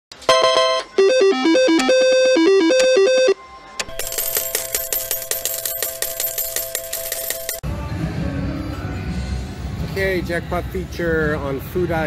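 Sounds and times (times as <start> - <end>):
synthesized jingle: 0.3 - 4.8
slot machine ringing win sound: 0.3 - 7.7.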